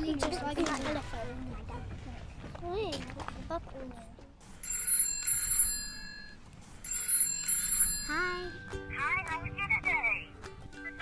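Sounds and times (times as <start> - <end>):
telephone bell double ring: 4.6 - 8.3.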